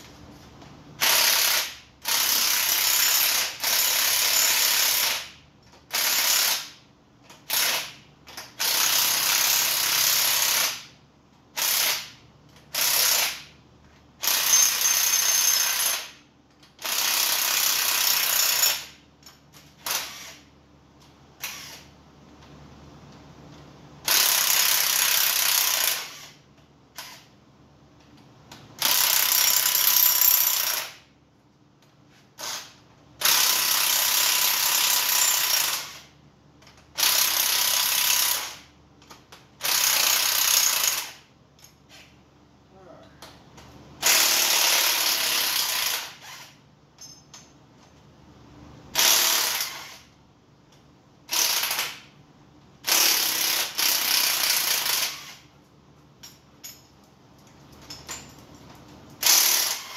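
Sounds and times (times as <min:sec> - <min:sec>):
power ratchet running: 0:59.2 - 0:59.9.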